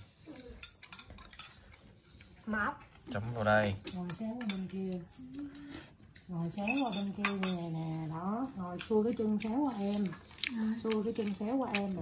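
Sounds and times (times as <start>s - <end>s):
chopsticks clicking against dishes: 0.0s - 2.3s, 3.8s - 7.6s, 8.7s - 12.0s.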